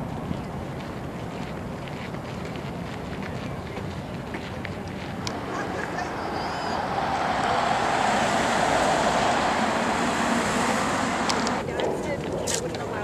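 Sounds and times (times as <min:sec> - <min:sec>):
passing vehicle rushing: 0:05.3 - 0:11.6.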